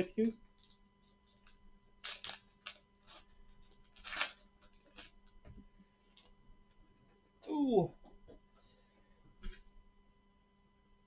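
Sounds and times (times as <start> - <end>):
card pack wrapper tearing: 0.6 - 5.2.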